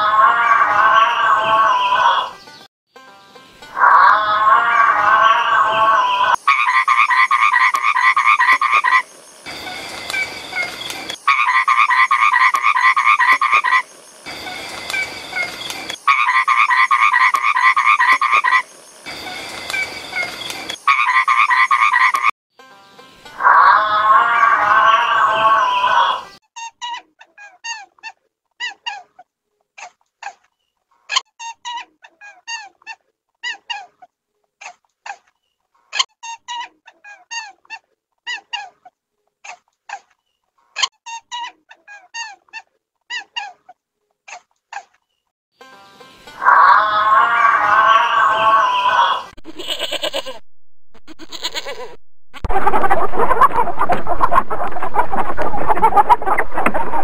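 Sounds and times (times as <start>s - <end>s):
loud animal call: 0.0s - 2.4s, 3.8s - 9.1s, 23.4s - 26.4s, 46.4s - 50.4s
toad trilling: 3.8s - 9.1s
high squeaks and chirps: 4.7s - 22.3s.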